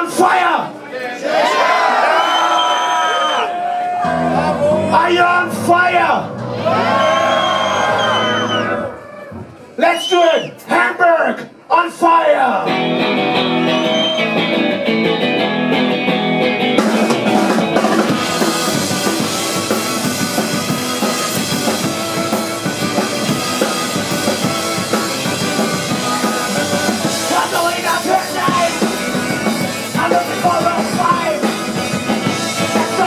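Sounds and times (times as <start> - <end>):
drums: 2.0 - 10.8, 12.6 - 33.0
held guitar chords: 4.0 - 8.8, 12.6 - 33.0
punk band playing live: 4.0 - 9.6, 12.6 - 33.0.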